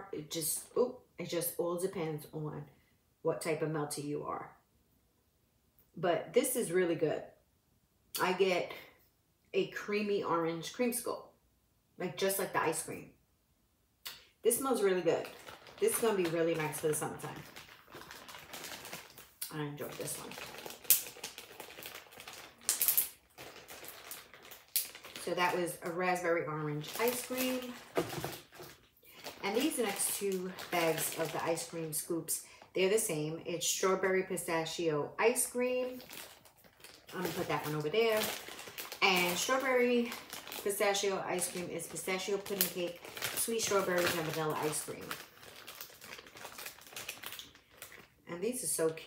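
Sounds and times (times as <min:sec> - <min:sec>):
plastic bag crinkling: 0:14.6 - 0:32.7, 0:35.6 - 0:48.8.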